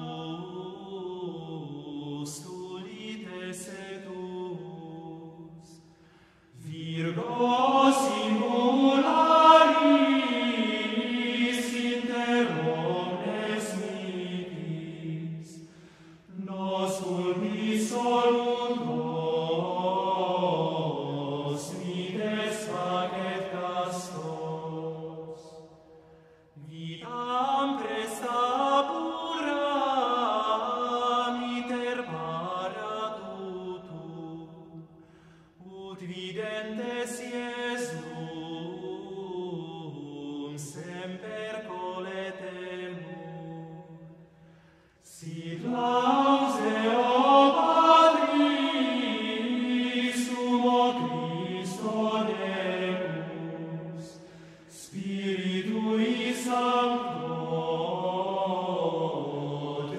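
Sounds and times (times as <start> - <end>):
men's choir chanting in a church: 0.0 - 59.9.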